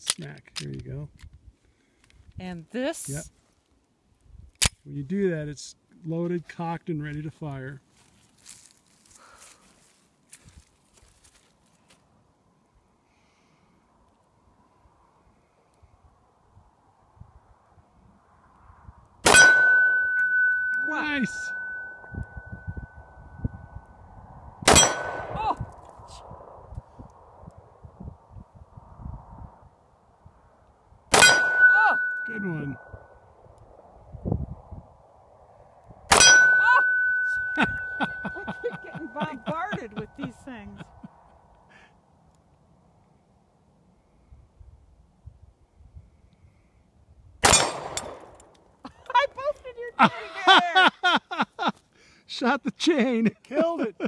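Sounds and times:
pistol shot: 19.2 - 20.5, 24.6 - 25.4, 31.1 - 32.2, 36.1 - 37.1, 47.4 - 48.4
steel target ringing: 19.3 - 23.0, 24.7 - 25.4, 31.2 - 33.1, 36.1 - 38.8.

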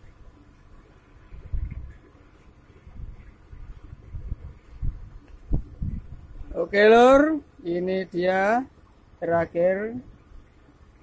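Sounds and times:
low thumps and rumble: 1.2 - 2.2, 2.8 - 6.5.

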